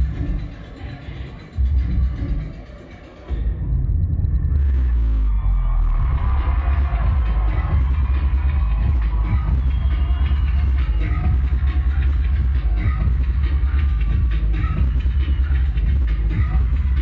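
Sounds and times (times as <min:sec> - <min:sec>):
live synth-pop through a pa: 0:00.0 - 0:17.0
booming bass: 0:03.4 - 0:17.0.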